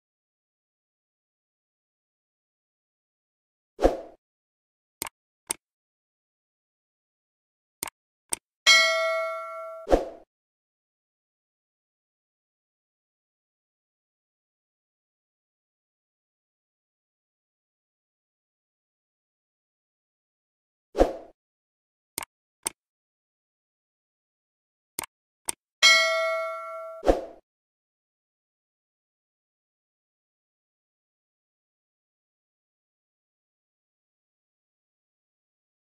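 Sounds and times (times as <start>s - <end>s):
bright bell ding: 8.7s - 9.9s, 25.8s - 27.0s.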